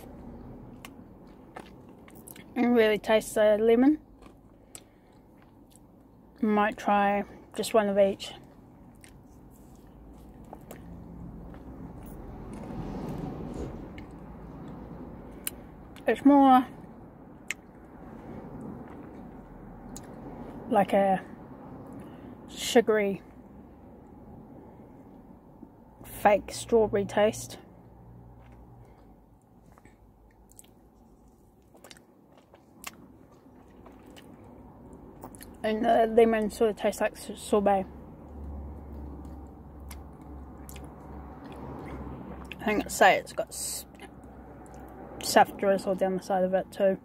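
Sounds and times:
person chewing ice cream cone: 0.0 - 2.6, 4.0 - 6.4, 8.4 - 16.0, 16.8 - 20.6, 28.2 - 35.6, 38.3 - 42.6.

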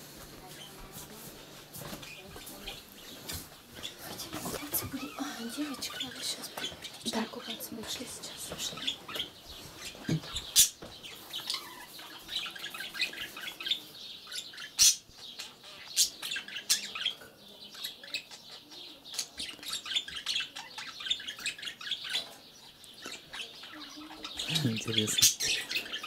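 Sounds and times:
budgerigars chirping: 2.0 - 26.0.

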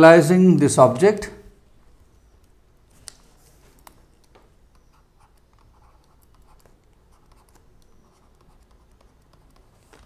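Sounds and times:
stylus scratching on drawing tablet: 4.7 - 10.0.

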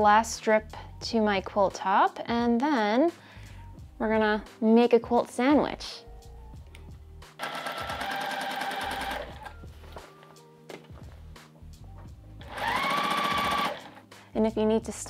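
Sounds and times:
sewing machine running: 7.4 - 9.5, 12.4 - 14.0.

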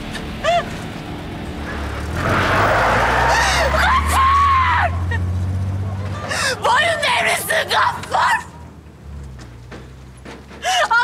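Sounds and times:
truck engine hum: 0.0 - 11.0.

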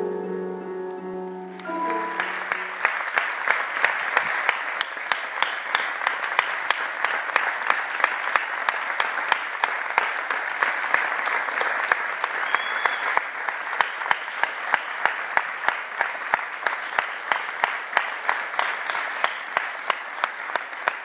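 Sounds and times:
audience clapping: 1.5 - 21.0.

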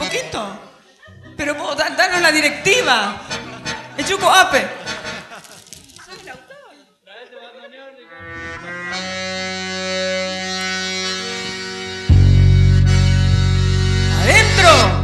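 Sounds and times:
accordion held chord: 2.1 - 5.3, 8.1 - 15.0
loud low bass note: 11.9 - 15.0.

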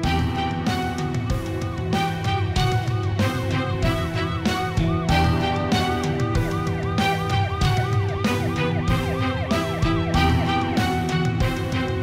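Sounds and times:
dramatic music with drum beat: 0.0 - 12.0
siren-like wail: 0.0 - 12.0.

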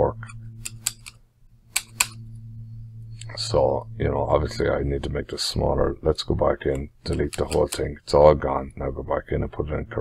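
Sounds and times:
low electrical hum: 0.0 - 10.0
computer mouse clicks: 0.6 - 2.2.

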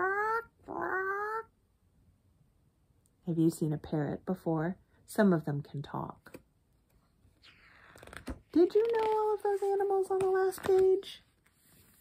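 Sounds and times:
woman imitating parrot squawk: 0.0 - 1.5.

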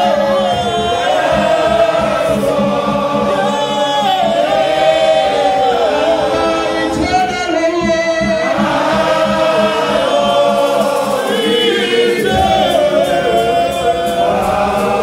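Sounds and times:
group singing a gospel hymn: 0.0 - 15.0
man singing into a microphone: 6.3 - 8.6.

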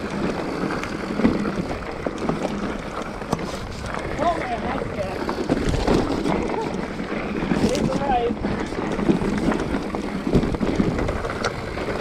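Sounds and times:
bike knocking on rocks: 0.0 - 12.0
bike rattling: 0.0 - 12.0
bike tyres crunching on gravel: 0.0 - 12.0.

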